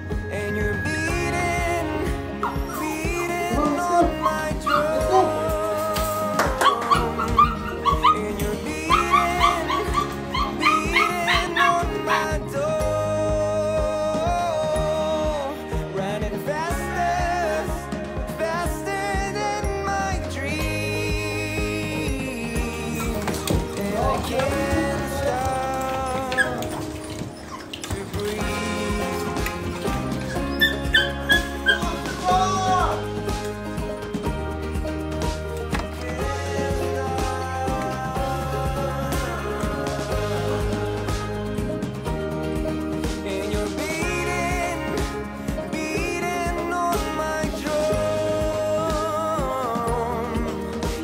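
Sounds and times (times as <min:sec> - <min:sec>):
background music with beat: 0:00.0 - 0:51.0
puppies yipping and whimpering: 0:02.3 - 0:05.7, 0:06.4 - 0:12.4, 0:22.8 - 0:32.4.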